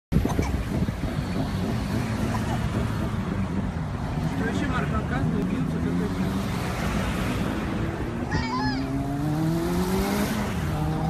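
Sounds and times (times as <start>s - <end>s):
car engine and road noise: 0.1s - 11.0s.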